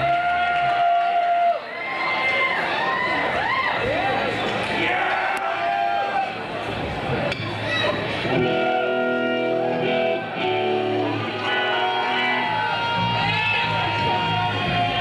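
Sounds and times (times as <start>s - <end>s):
crowd voices and shouts: 0.0s - 15.0s
electric guitar noodling: 8.2s - 15.0s.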